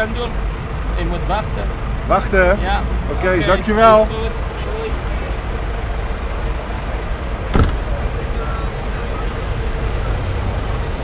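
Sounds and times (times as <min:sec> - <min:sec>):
idling engines and traffic: 0:00.0 - 0:11.0
sharp knock: 0:07.5 - 0:07.9.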